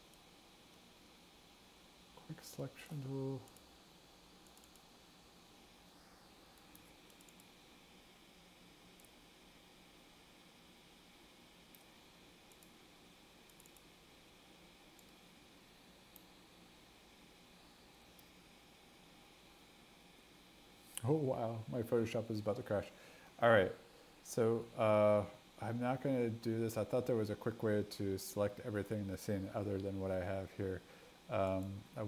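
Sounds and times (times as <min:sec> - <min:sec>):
faint room hum: 0:00.0 - 0:32.0
computer mouse clicks: 0:04.4 - 0:04.9, 0:06.6 - 0:07.5, 0:09.0 - 0:09.2, 0:12.5 - 0:12.8, 0:13.5 - 0:13.9.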